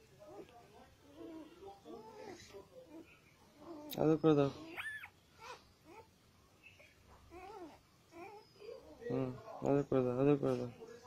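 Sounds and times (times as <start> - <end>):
puppy whimpering: 0.2 - 9.4.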